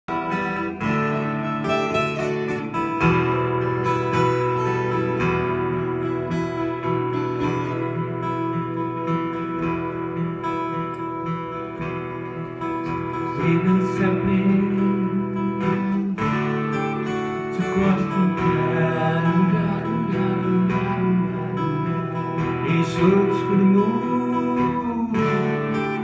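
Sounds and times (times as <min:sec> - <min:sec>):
acoustic guitars strumming: 0:00.0 - 0:26.0.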